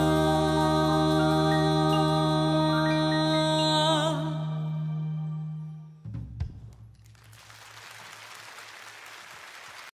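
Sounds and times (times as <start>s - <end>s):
audience applauding: 7.0s - 9.9s.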